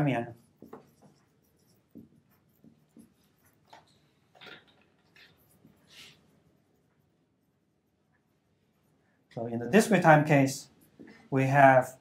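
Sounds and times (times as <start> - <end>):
marker scratching on whiteboard: 0.0 - 9.0, 9.7 - 12.0.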